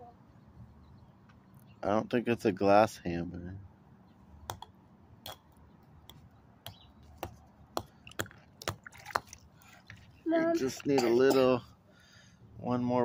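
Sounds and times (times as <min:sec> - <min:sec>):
hammer tapping on ice: 0:06.7 - 0:09.3.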